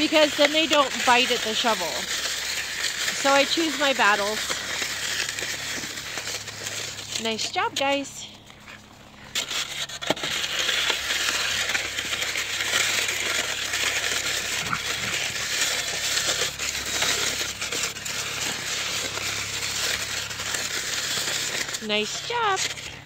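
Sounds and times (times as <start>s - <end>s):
snow shovel scraping snow: 0.0s - 23.0s.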